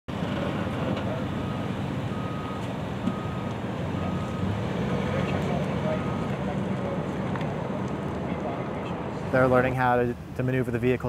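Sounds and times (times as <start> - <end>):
reversing alarm beeping: 0.8 - 6.6.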